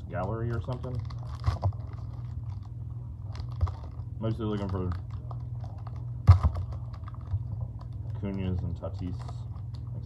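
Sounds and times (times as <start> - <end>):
plastic wrapper crinkling: 0.1 - 10.0
plastic wrapper ripping: 0.2 - 10.0.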